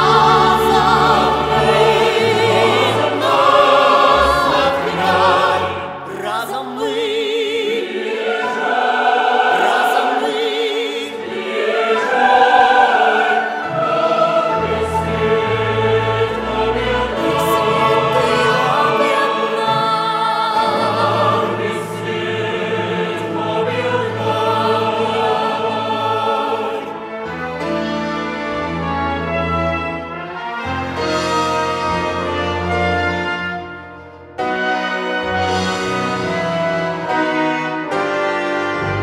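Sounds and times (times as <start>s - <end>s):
low orchestral bass: 0.0s - 6.2s, 11.3s - 19.1s, 20.6s - 39.0s
choir singing with vibrato: 0.0s - 27.7s
symphony orchestra: 0.0s - 39.0s.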